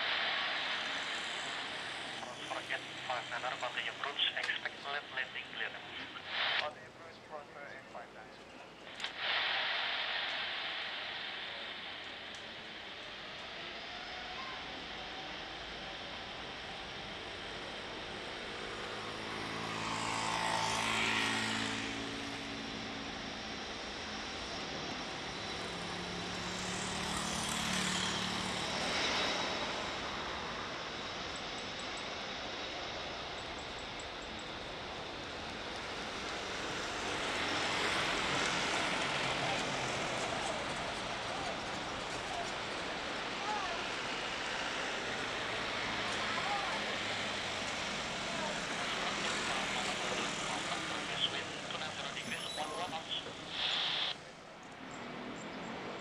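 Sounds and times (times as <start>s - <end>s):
jet engines roaring: 0.0s - 56.0s.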